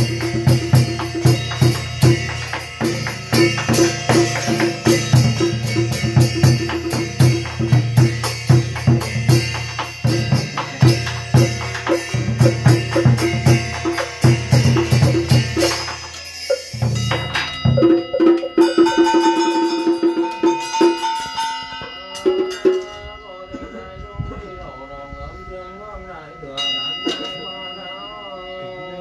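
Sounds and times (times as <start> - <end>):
drums beaten in quick rhythm: 0.0 - 23.8
rapid roll of struck notes: 0.0 - 28.0
ringing bell: 0.0 - 29.0.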